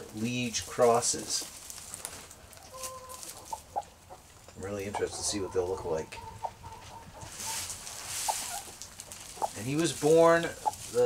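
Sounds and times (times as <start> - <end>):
soft rustling in straw: 0.0 - 11.0
chicken clucking: 2.4 - 11.0.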